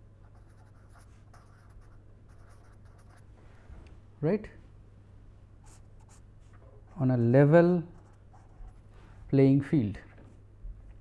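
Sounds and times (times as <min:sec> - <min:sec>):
low steady hum: 0:00.0 - 0:11.0
pen scratching on paper: 0:00.3 - 0:03.2.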